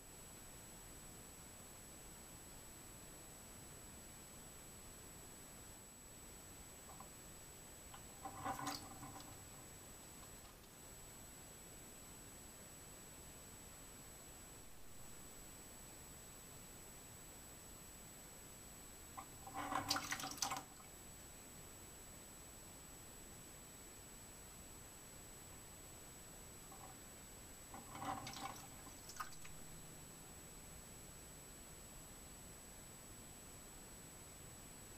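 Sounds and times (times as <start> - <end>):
water splash and sloshing: 19.4 - 20.8, 27.8 - 29.6.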